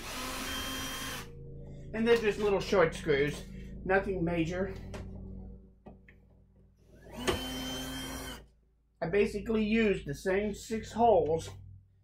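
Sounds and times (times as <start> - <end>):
cordless screw gun running: 0.0 - 1.3, 7.0 - 8.4.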